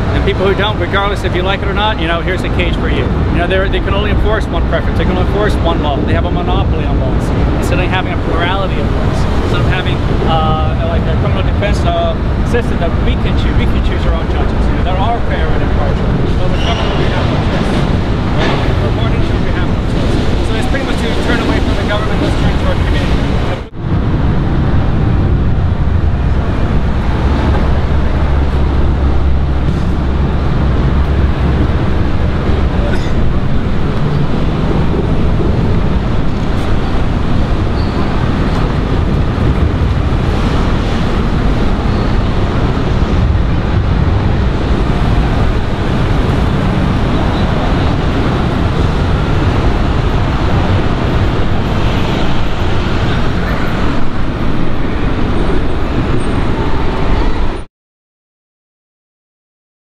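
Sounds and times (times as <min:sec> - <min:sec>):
indistinct voices: 0:00.0 - 0:23.8
street traffic: 0:00.0 - 0:57.7.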